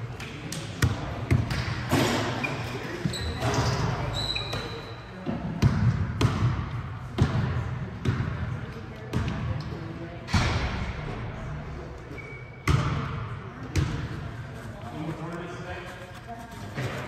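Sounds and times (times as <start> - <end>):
background chatter: 0.0 - 17.0.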